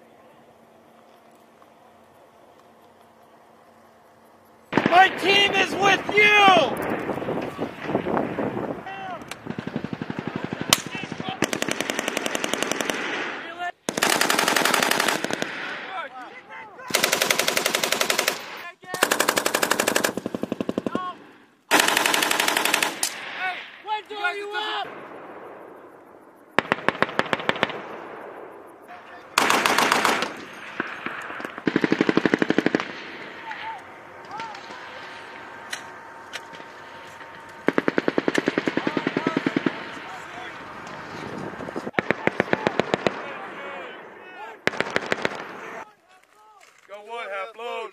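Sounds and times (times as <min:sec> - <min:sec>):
automatic gunfire bursts: 0:04.7 - 0:06.7, 0:09.4 - 0:15.9, 0:16.9 - 0:23.4, 0:26.6 - 0:28.0, 0:29.4 - 0:43.7, 0:44.6 - 0:45.8
single gunshots: 0:29.4 - 0:44.1, 0:44.7 - 0:45.8.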